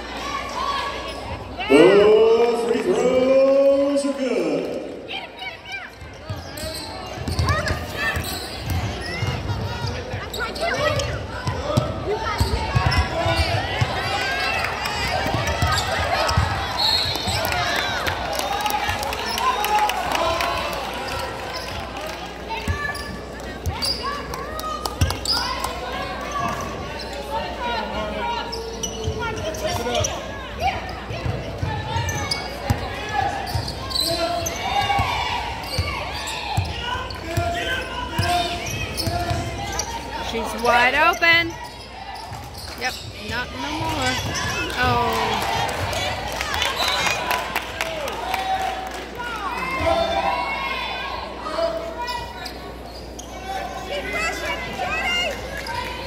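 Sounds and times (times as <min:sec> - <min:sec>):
voices: 0:00.0 - 0:56.0
basketball bouncing: 0:07.2 - 0:09.7.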